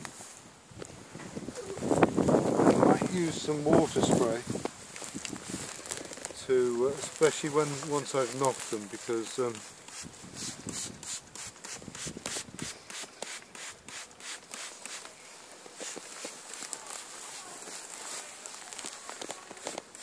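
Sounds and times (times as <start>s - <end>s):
water sprayer hissing spritzes: 8.3s - 15.2s.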